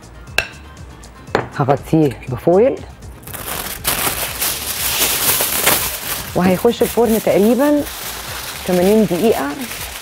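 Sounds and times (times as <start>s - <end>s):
aluminium foil crinkling: 3.2s - 10.0s.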